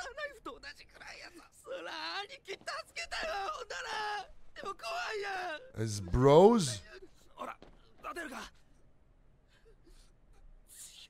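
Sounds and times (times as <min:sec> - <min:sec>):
man speaking: 0:05.7 - 0:06.9.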